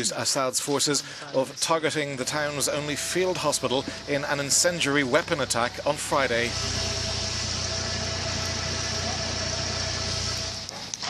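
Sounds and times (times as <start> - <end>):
engine-like rumble with hiss: 2.2 - 11.0.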